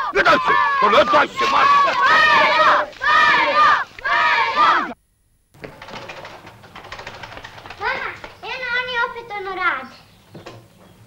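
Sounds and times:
children shouting and yelling: 0:00.0 - 0:05.0, 0:07.7 - 0:10.0
faint background noise: 0:00.0 - 0:11.0.

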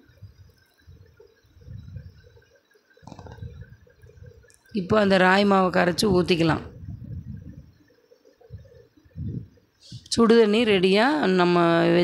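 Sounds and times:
rice bubbling in a pot: 0:00.0 - 0:05.7.

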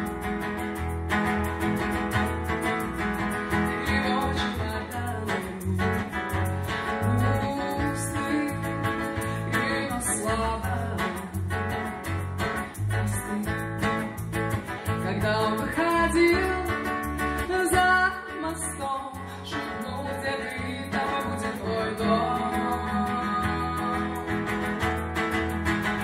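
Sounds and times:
bass guitar low notes: 0:00.0 - 0:19.4
acoustic guitar: 0:00.0 - 0:26.0.

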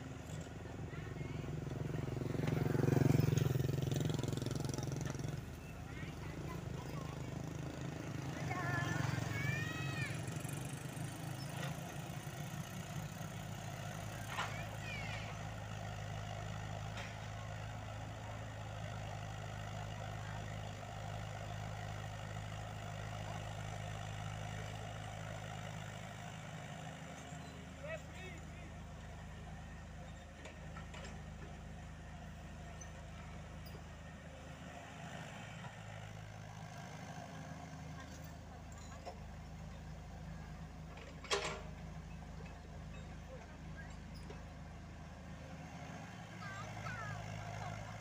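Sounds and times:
diesel engines running: 0:00.0 - 0:48.0
excavator digging and loading dirt: 0:00.0 - 0:48.0.

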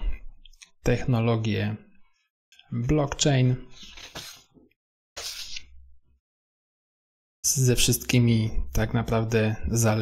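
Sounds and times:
man's voice: 0:07.5 - 0:10.0.

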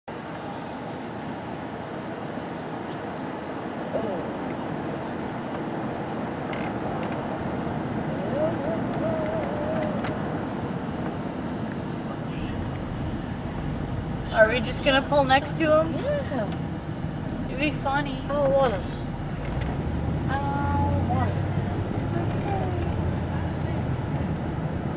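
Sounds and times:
car road and engine rumble: 0:00.1 - 0:24.9
faint wavering voice-like sound: 0:08.1 - 0:10.1.

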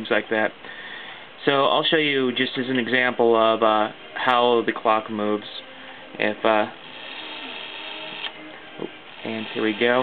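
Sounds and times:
clock gears whirring: 0:06.8 - 0:08.3, 0:09.0 - 0:10.0.

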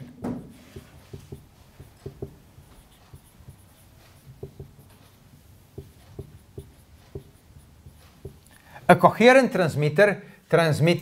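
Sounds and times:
marker pen writing on whiteboard: 0:00.6 - 0:09.4.

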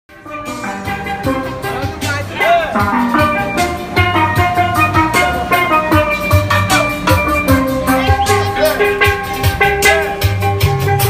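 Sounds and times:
low drum beat: 0:00.1 - 0:11.0
steel pan melody: 0:00.1 - 0:11.0.

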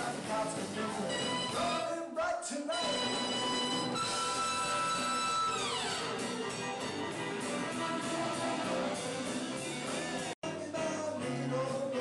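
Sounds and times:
man singing: 0:00.0 - 0:03.9, 0:10.4 - 0:12.0
live band with horn section: 0:01.0 - 0:01.8, 0:02.8 - 0:10.3.

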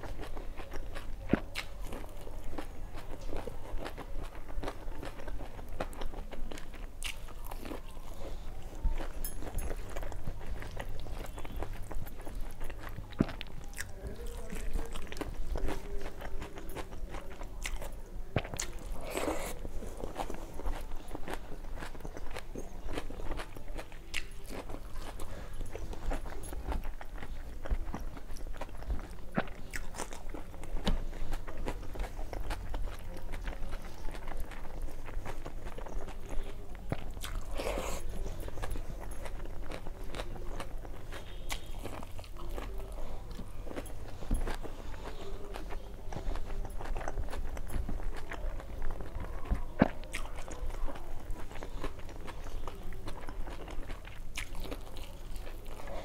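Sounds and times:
person chewing and biting food: 0:00.0 - 0:56.0.

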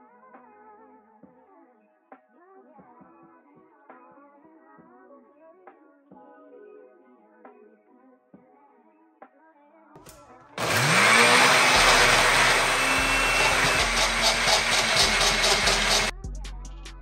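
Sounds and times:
faint background music: 0:00.0 - 0:10.6
blender motor whining: 0:10.6 - 0:16.1.

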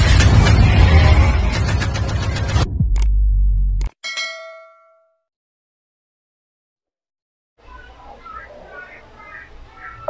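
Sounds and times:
deep low boom: 0:00.0 - 0:03.9
notification bell ding: 0:04.0 - 0:05.2.

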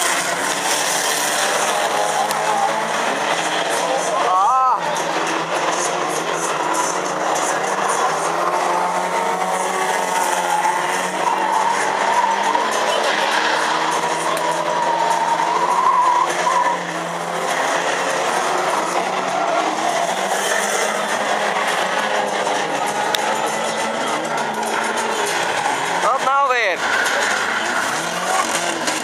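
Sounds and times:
race car engines revving: 0:00.0 - 0:29.0
tyre and track noise: 0:00.0 - 0:29.0.

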